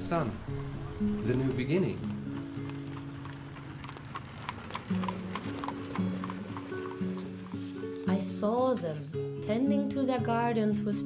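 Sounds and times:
music of held low notes: 0.0s - 11.0s
horse hooves clip-clopping: 0.5s - 8.8s.

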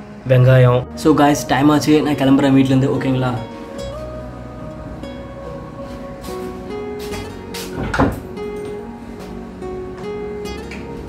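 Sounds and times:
guitar music: 0.0s - 11.0s
door latch clunk: 7.8s - 8.2s.

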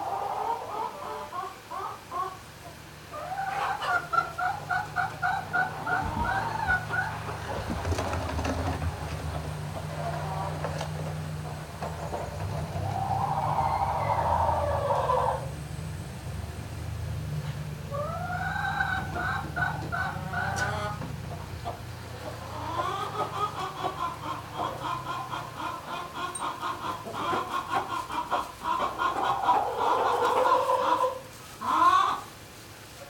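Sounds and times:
poultry calling: 3.1s - 8.7s, 9.7s - 15.5s, 17.9s - 32.3s
steady low hum: 4.0s - 22.8s.

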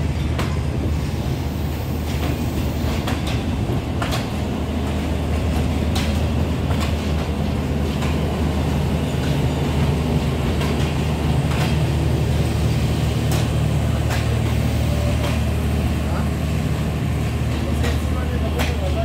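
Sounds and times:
train coaches rumbling past: 0.0s - 19.0s
wheels clicking over rail joints: 2.1s - 16.2s, 17.3s - 19.0s.

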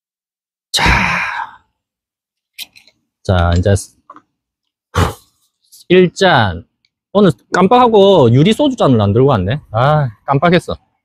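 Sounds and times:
man sighing: 0.8s - 1.7s.

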